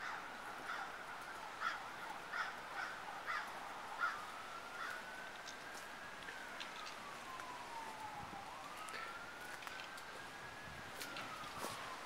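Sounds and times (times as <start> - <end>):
distant siren wailing: 0.2 - 12.0.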